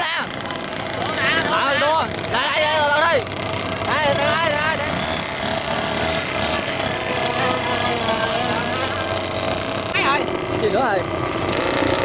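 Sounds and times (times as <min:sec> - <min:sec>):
engine noise: 0:00.0 - 0:12.0.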